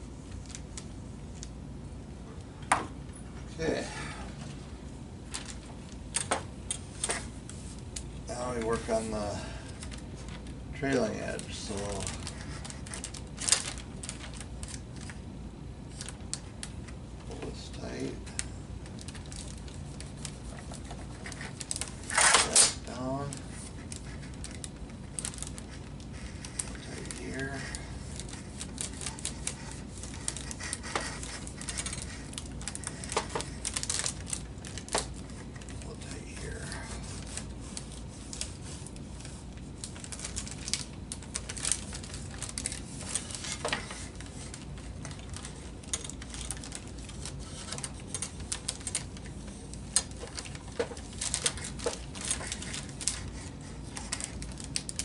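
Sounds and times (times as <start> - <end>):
plastic film crinkling: 5.2 - 55.0.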